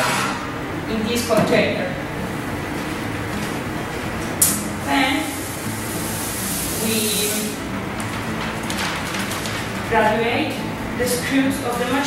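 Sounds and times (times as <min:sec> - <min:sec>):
lab equipment humming: 0:00.0 - 0:12.0
handling noise hiss: 0:02.3 - 0:08.8.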